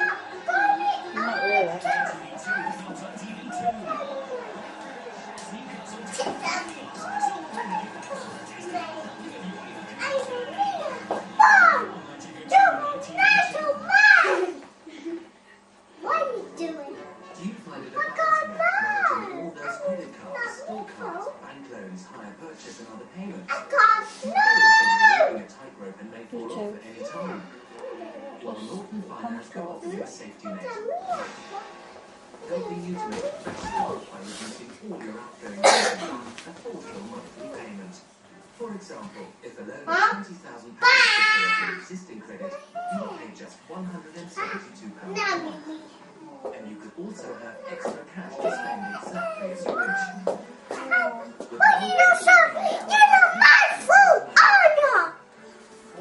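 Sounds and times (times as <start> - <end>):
faint television speech: 0.0 - 56.0
person coughing: 35.6 - 36.2.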